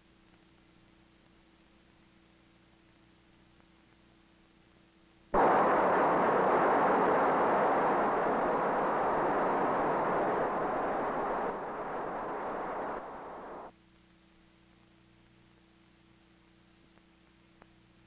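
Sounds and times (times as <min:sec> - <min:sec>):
rocket motor roaring: 0:05.4 - 0:13.7.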